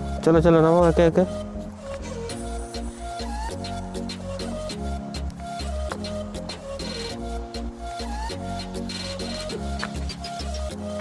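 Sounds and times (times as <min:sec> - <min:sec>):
electronic tune with pulsing bass: 0:00.0 - 0:11.0.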